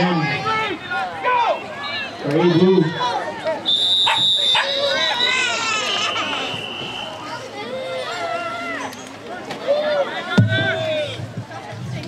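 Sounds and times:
voices from sideline: 0.0 - 12.0
referee's whistle blast: 3.6 - 7.4.

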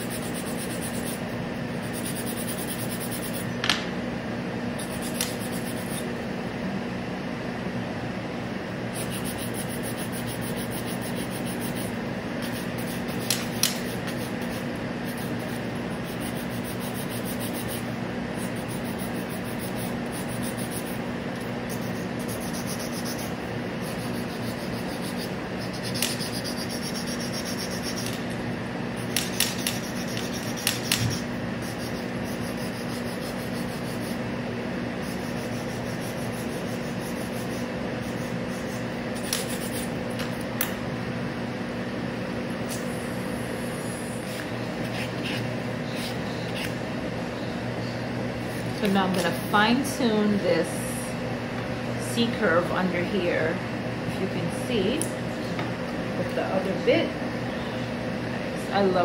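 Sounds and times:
nail file scratching nail: 0.0 - 3.6, 4.8 - 6.1, 8.9 - 28.3, 29.0 - 34.2, 35.0 - 40.4, 44.2 - 46.8
steady machine hum: 0.0 - 59.0.

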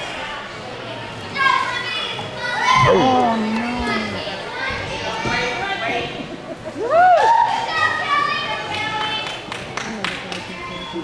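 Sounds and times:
children chattering and calling out: 0.0 - 6.8, 7.4 - 9.2.

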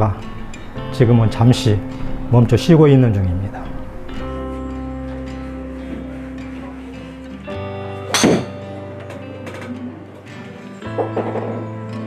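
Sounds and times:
background music: 0.0 - 12.0
golf club striking ball: 8.1 - 8.7.

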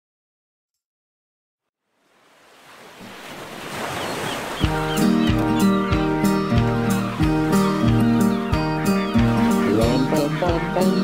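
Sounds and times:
surf breaking on a beach: 2.1 - 5.0
held chords over steady beat: 4.7 - 11.0.

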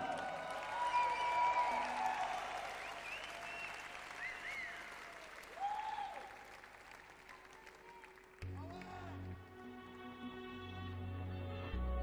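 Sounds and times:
audience applauding and cheering: 0.0 - 10.4.

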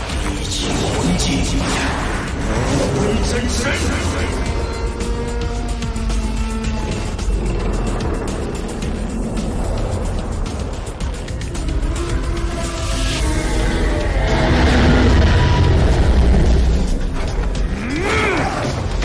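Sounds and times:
dramatic background music: 0.0 - 19.0
low rumble of battle effects: 0.0 - 19.0.

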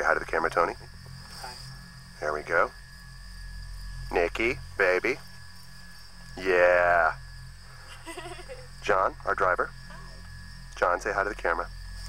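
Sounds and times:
crickets chirring: 0.0 - 12.0.

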